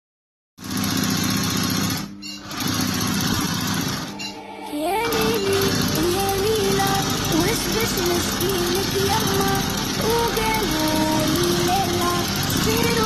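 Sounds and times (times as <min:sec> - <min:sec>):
sewing machine stitching: 0:00.6 - 0:04.2, 0:05.0 - 0:13.0
music melody: 0:04.1 - 0:13.0.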